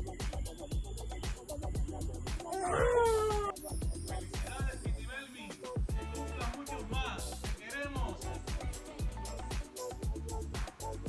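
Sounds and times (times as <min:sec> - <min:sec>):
background music with steady beat: 0:00.0 - 0:11.0
baby squealing: 0:02.4 - 0:03.6.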